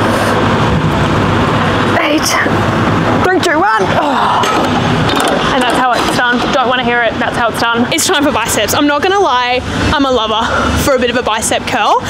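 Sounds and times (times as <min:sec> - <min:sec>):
loud noisy haze: 0:00.0 - 0:12.0
woman groaning: 0:03.7 - 0:04.7
weight stack knocking: 0:04.3 - 0:07.7.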